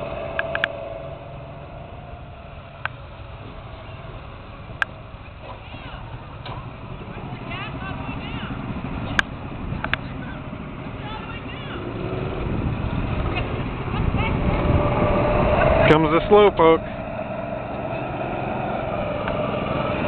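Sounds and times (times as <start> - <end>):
go-kart engines droning: 0.0 - 20.0.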